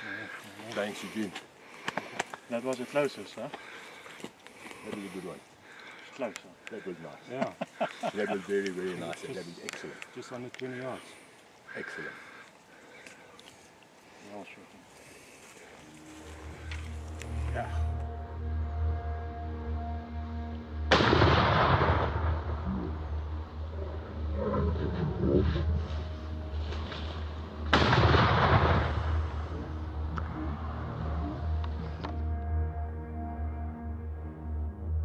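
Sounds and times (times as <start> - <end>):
music with low drone: 15.6 - 35.0
rifle shots: 20.9 - 22.6, 27.7 - 29.4.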